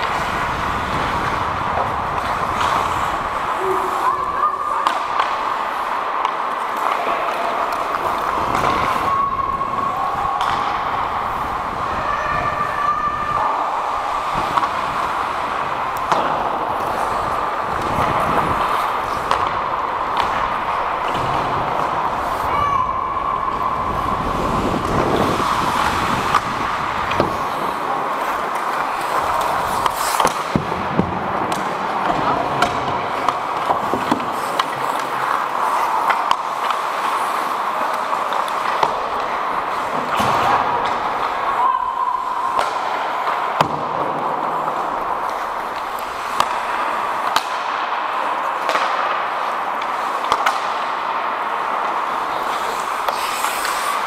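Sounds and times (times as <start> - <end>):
hockey sticks and puck clacking: 0.0 - 54.0
skate blades scraping ice: 0.0 - 54.0.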